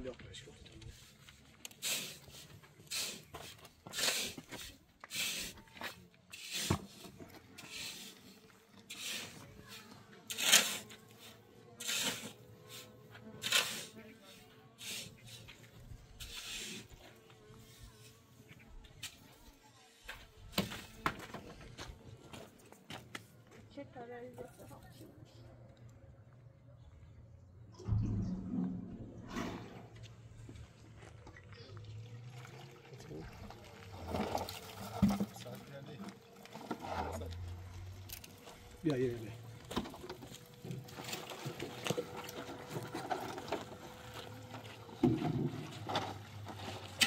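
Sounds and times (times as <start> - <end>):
water splashing: 27.8 - 35.5.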